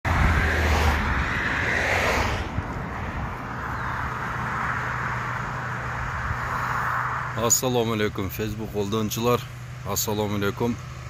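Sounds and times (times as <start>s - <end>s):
vehicle passing close by: 0.0s - 7.8s
road traffic noise: 0.0s - 11.0s.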